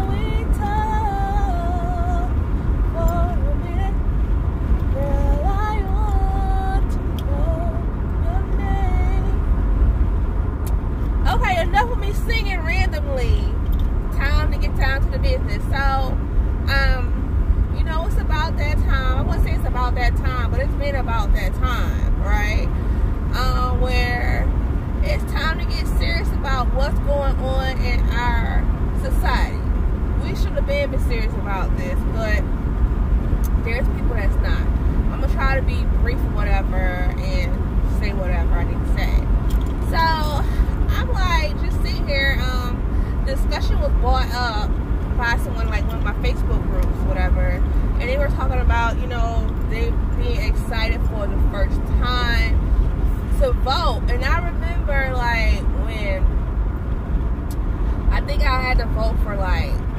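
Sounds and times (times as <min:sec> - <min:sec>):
woman talking: 0:00.0 - 0:02.3, 0:03.0 - 0:04.0, 0:04.9 - 0:07.6, 0:08.2 - 0:09.4, 0:11.2 - 0:22.7, 0:23.3 - 0:32.4, 0:33.5 - 0:52.6, 0:53.2 - 0:56.3, 0:58.1 - 0:59.9
car rumbling on the road: 0:00.0 - 0:59.9.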